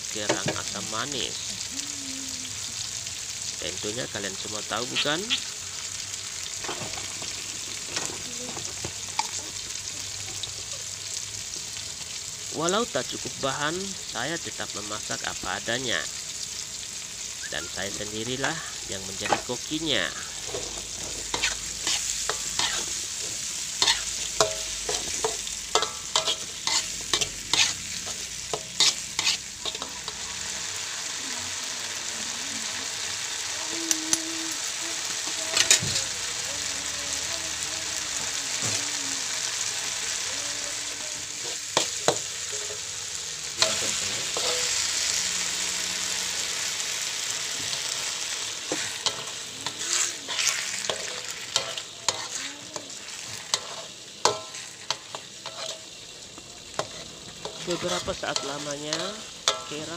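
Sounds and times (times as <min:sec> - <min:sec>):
meat sizzling in a wok: 0:00.0 - 0:59.9
metal spatula scraping: 0:20.3 - 0:30.6, 0:41.4 - 0:42.9, 0:43.6 - 0:45.2, 0:47.6 - 0:56.0, 0:56.7 - 0:59.9
spatula clacking on pan: 0:23.8 - 0:27.8, 0:53.5 - 0:55.8.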